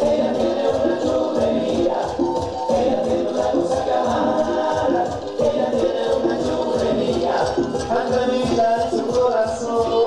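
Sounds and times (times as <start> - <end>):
music with steady beat and vocals: 0.0 - 10.0.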